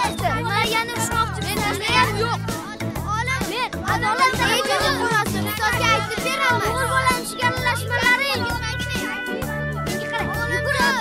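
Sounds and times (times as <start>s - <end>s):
background music with bass line: 0.0s - 11.0s
children shouting: 0.0s - 11.0s.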